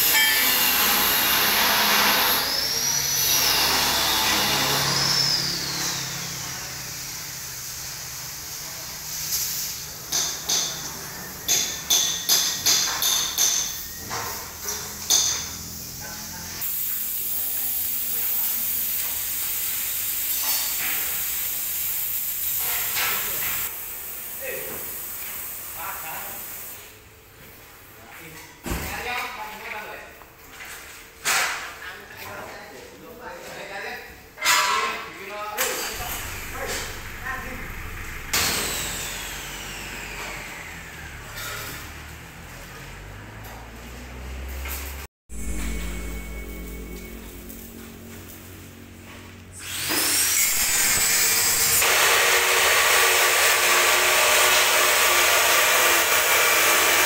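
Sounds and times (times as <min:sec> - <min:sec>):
hammer striking steel: 0:00.0 - 0:02.1, 0:10.1 - 0:15.6, 0:34.4 - 0:39.0, 0:45.3 - 0:48.4
low workshop hum: 0:00.0 - 0:57.0
steady hiss: 0:15.8 - 0:27.0.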